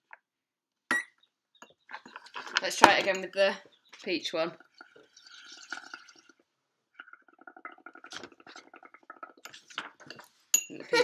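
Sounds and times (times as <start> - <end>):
air bubbling through a straw: 4.5 - 10.2.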